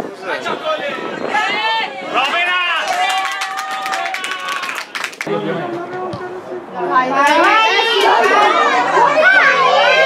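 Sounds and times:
players and spectators shouting: 7.3 - 10.0.

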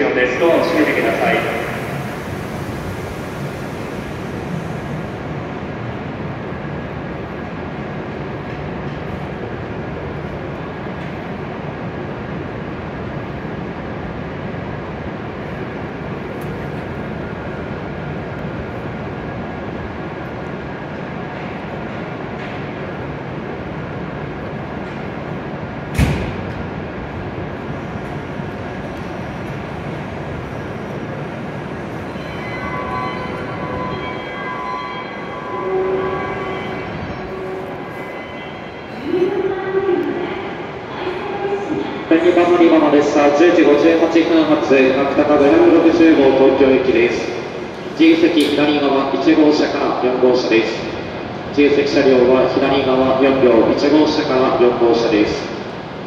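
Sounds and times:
stationary train humming: 0.0 - 56.0.

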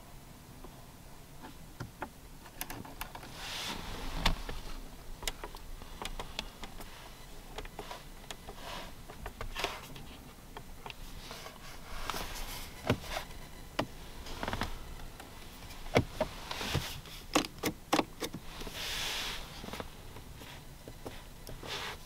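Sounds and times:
rubbing sound: 3.3 - 4.8, 11.0 - 13.3, 18.4 - 22.0.

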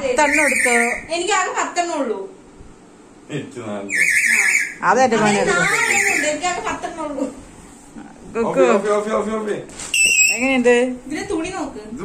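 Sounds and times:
people talking: 0.0 - 2.4, 3.4 - 7.4, 10.3 - 12.0
parrot screeching: 0.1 - 1.1, 3.9 - 6.4, 9.9 - 10.5.

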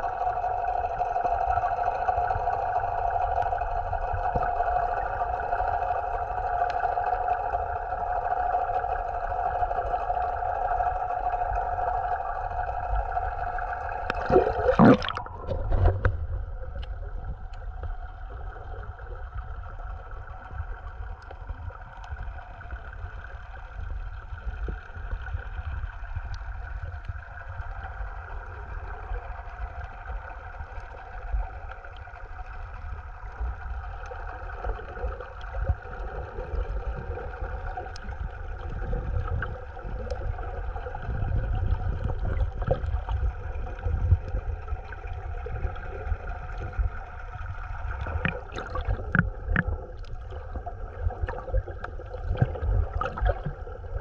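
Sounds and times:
droning hum: 0.0 - 54.0
water rumbling against microphone: 0.0 - 54.0
faint clicks: 15.8 - 17.9, 20.5 - 23.3, 37.3 - 38.4.

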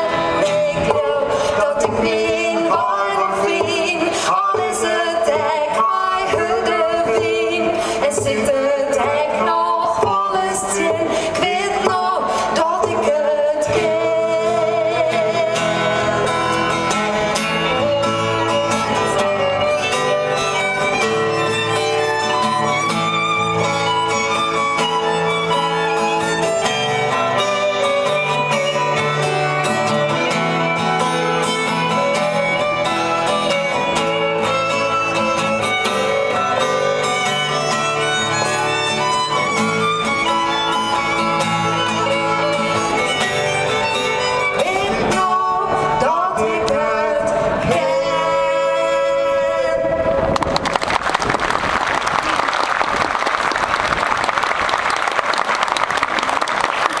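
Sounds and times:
acoustic guitar playing: 0.0 - 50.6
violin playing: 15.7 - 45.9
audience applause: 50.4 - 57.0.

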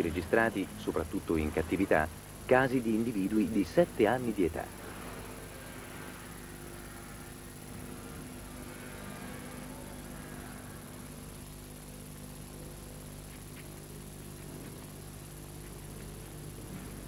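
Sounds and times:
even hiss: 0.0 - 17.0
faint high whine: 0.0 - 17.0
low hum: 0.0 - 17.0.

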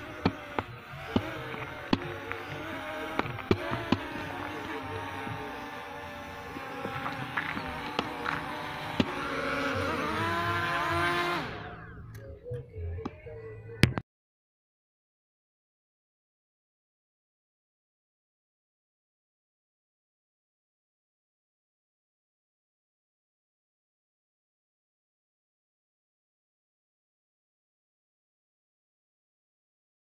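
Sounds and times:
drone propellers whining: 0.0 - 14.0.

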